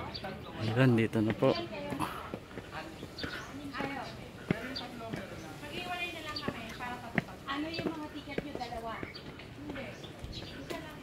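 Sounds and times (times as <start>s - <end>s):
footsteps on concrete stairs: 0.0s - 11.0s
indistinct voices talking: 0.0s - 11.0s.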